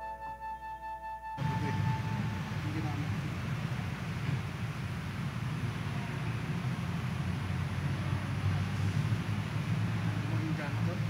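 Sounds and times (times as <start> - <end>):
low background rumble: 1.4 - 11.0.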